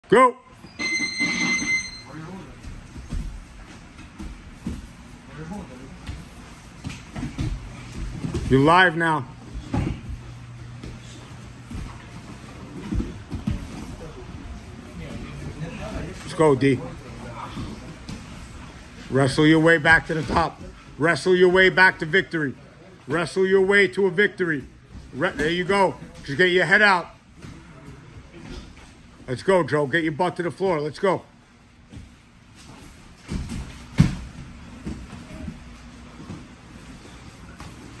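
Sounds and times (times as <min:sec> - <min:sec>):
bodies thumping on foam mats: 0:09.5 - 0:14.2, 0:33.1 - 0:35.6.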